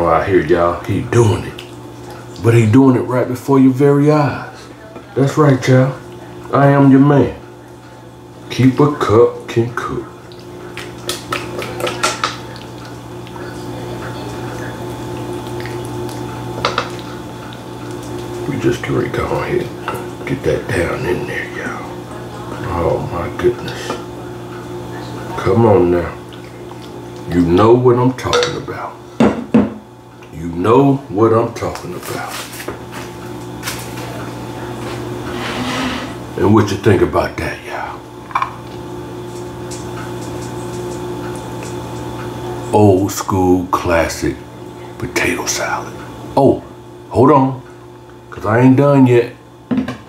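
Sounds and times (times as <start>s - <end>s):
appliance humming: 0.0s - 50.0s
spatula scraping metal bowl: 35.2s - 36.2s.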